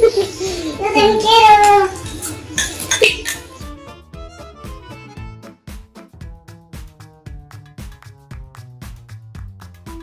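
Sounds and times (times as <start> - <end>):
music: 0.0 - 10.0
metal spoon clinking ceramic: 2.0 - 3.6.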